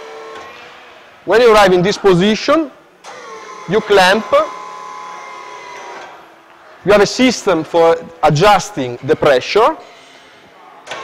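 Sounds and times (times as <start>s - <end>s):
hydraulic pump motor whine: 0.0s - 1.1s, 3.0s - 6.3s.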